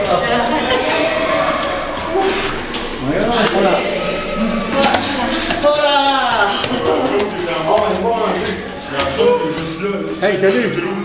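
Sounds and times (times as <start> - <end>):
indistinct voices: 0.0 - 11.0
footsteps on stairs: 2.0 - 10.0.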